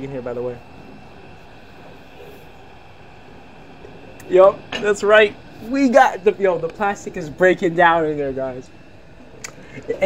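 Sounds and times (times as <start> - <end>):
faint high whine: 0.0 - 10.0
steady hum and hiss: 0.0 - 10.0.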